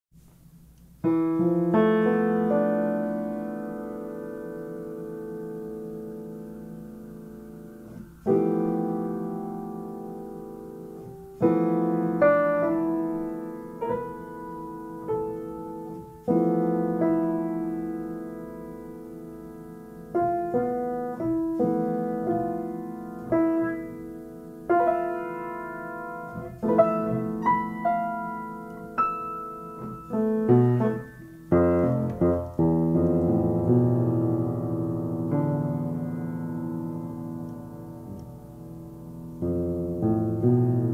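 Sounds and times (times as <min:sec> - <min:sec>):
solo piano jazz chords: 0:00.2 - 0:40.9.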